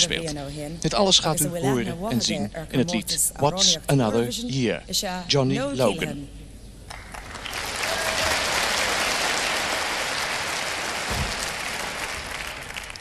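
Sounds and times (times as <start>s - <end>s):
audience applauding: 6.9s - 13.0s.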